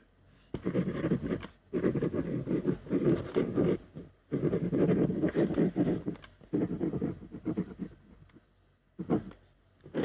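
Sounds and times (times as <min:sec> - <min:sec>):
pen scratching on paper: 0:00.5 - 0:08.3, 0:09.0 - 0:10.0.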